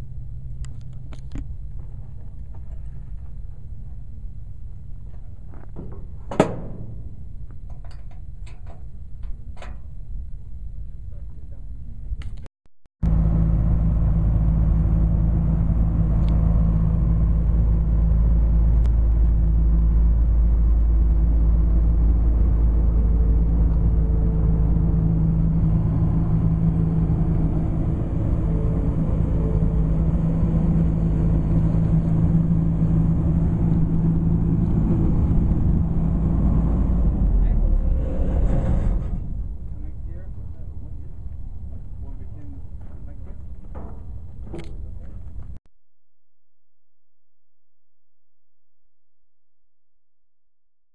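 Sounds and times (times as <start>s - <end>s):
outdoor background noise: 0.0s - 45.6s
vehicle engine running: 13.0s - 45.6s.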